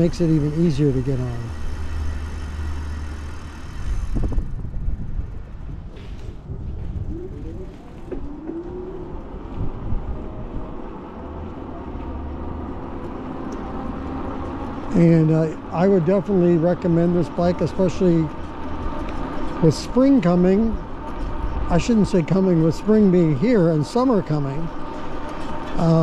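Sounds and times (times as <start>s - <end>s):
rising electric motor whine: 0.0s - 5.8s, 6.7s - 26.0s
wind rumble on microphone: 3.5s - 14.8s.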